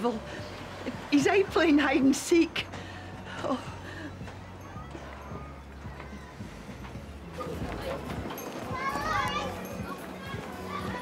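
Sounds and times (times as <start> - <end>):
background chatter: 0.0 - 11.0
children playing and calling out: 4.0 - 11.0.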